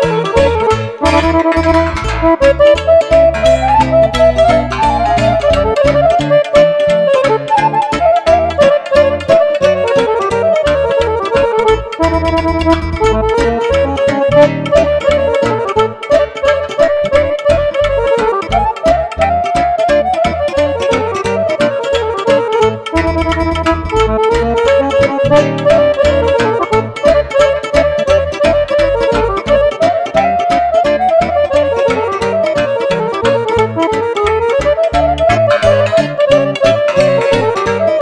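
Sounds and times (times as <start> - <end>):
accordion: 0.0 - 38.0
cimbalom notes: 0.0 - 38.0
clarinet melody: 0.0 - 38.0
keyboard bass line: 0.0 - 38.0.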